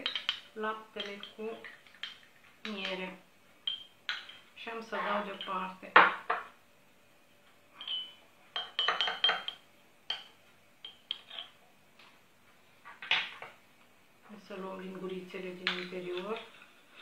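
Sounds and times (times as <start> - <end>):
glass cups clinking: 0.0 - 3.0, 3.6 - 4.5, 7.8 - 11.6
spoon tapping glass: 0.0 - 3.0, 3.6 - 4.4, 7.8 - 11.6.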